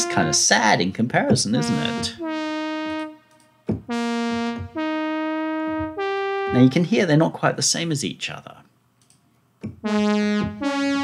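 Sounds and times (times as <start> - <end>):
synth brass sustained notes: 0.0 - 7.2, 9.8 - 11.0.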